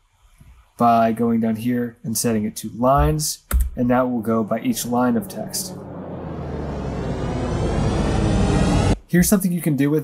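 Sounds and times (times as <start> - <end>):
rushing engine-like noise: 4.1 - 9.0.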